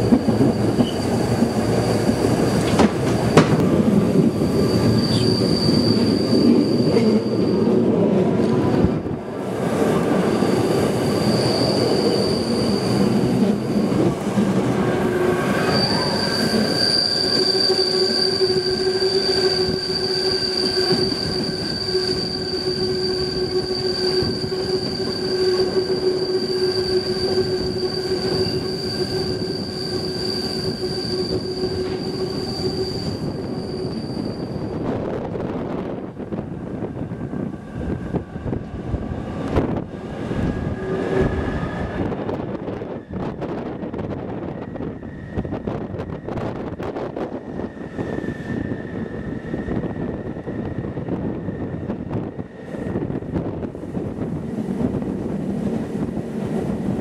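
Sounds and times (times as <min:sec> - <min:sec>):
train wheels squealing on curve: 0:00.0 - 0:08.8, 0:09.4 - 0:36.3, 0:36.9 - 0:53.6.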